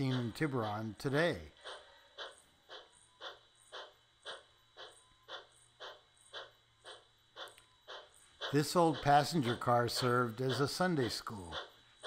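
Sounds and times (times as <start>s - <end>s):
steam locomotive chuffing: 0.0s - 11.8s.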